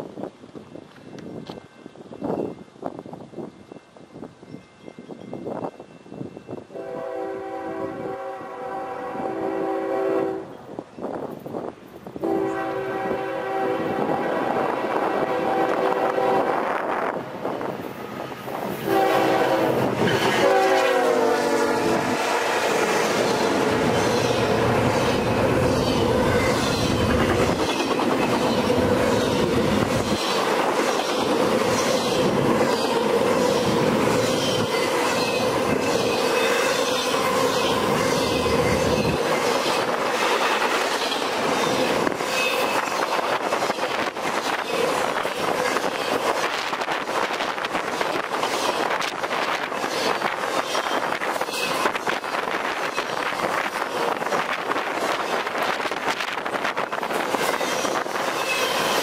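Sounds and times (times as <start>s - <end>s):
train rolling by: 0.0s - 59.0s
locomotive horn blasts: 6.7s - 10.6s, 12.2s - 16.6s, 18.8s - 24.0s.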